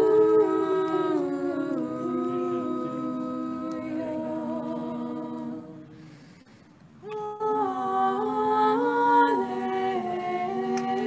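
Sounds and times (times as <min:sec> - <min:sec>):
choir singing a hymn: 0:00.0 - 0:06.2, 0:07.1 - 0:11.0.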